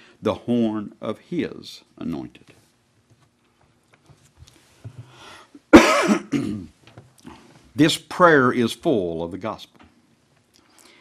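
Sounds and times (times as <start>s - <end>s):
man coughing: 5.7s - 6.7s.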